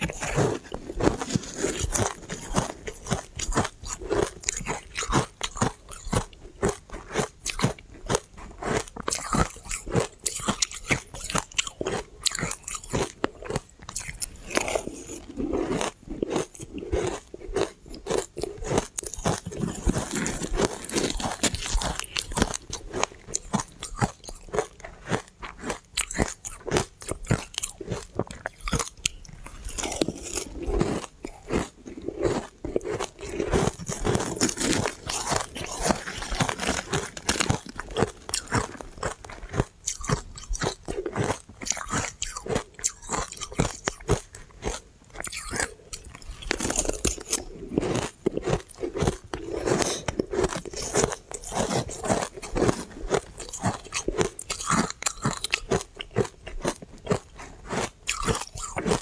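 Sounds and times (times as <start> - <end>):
ice being chewed: 0.0 - 59.0.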